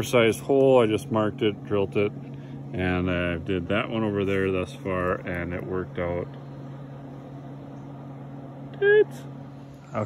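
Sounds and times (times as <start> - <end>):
low mechanical hum: 0.0 - 10.0
flat voice-like hum: 8.7 - 10.0.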